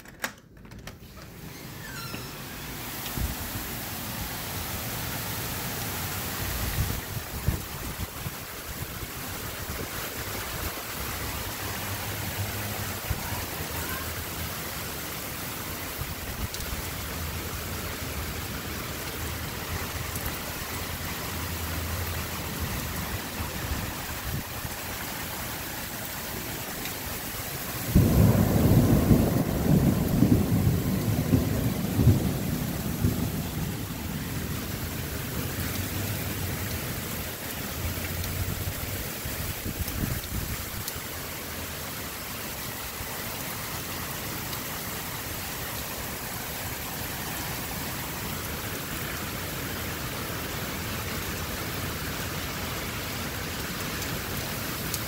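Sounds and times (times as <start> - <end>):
heavy rain pouring: 1.0 - 55.0
thunder clap rumbling: 27.8 - 34.7.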